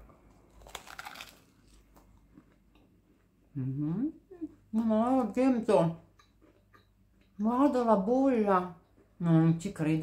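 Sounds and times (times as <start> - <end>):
crunching bite into pastry: 0.2 - 2.6.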